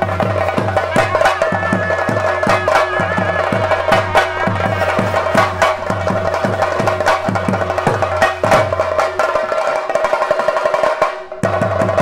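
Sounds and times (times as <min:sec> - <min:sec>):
steady held tone: 0:00.0 - 0:08.8
cymbal-like strokes: 0:00.0 - 0:09.3
drums beaten fast with sticks: 0:00.0 - 0:12.0.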